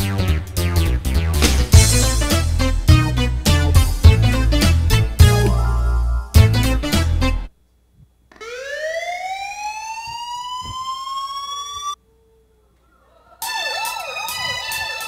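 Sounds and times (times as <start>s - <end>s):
recorded music: 0.0s - 7.6s, 13.4s - 15.0s.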